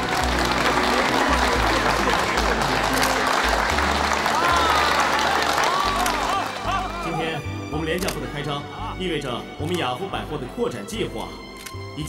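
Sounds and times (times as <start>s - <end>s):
crowd applauding: 0.0s - 7.4s.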